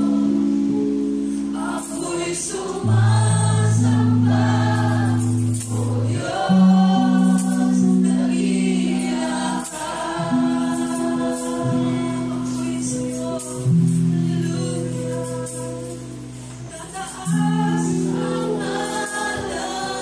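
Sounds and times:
church band playing: 0.0 - 20.0
woman singing into microphone: 0.0 - 20.0.

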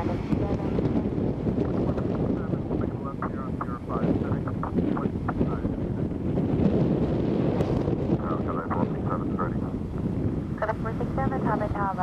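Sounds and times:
jet engines rumbling: 0.0 - 12.0
wind buffeting microphone: 0.0 - 12.0.

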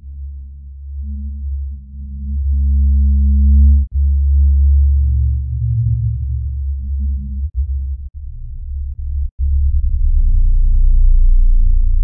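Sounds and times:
deep electronic bass drone: 0.0 - 12.0.

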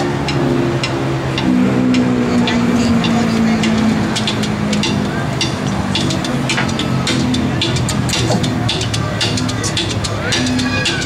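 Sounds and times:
gamelan low drone: 0.0 - 11.0
sharp gamelan strikes: 0.0 - 11.0.

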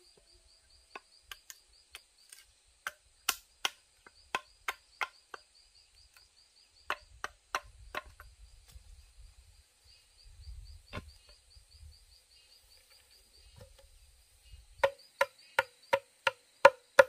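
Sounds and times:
insects chirping: 0.0 - 17.0
machete chopping bamboo: 0.9 - 5.4, 6.9 - 8.3, 14.8 - 17.0.

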